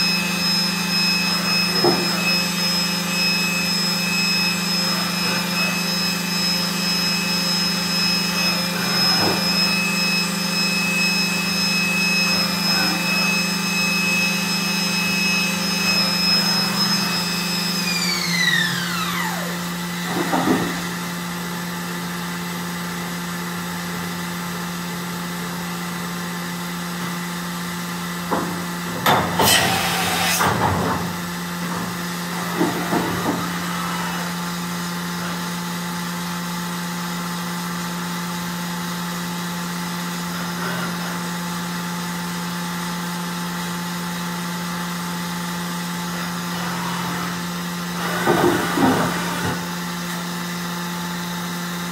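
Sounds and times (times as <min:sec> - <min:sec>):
machine humming: 0:00.0 - 0:22.5.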